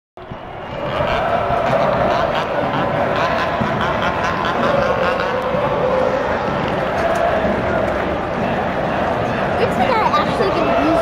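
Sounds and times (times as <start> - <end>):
crowd drawn-out vocal sound: 0.2 - 11.0
stadium crowd noise: 0.2 - 11.0.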